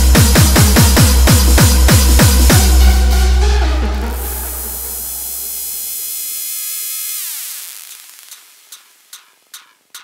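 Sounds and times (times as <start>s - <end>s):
deep bass: 0.0s - 5.5s
hissing noise sweep: 3.9s - 9.6s.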